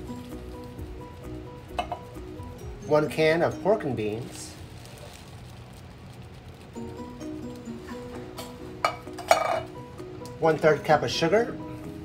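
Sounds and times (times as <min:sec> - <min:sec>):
background music: 0:00.0 - 0:04.8, 0:06.6 - 0:12.0.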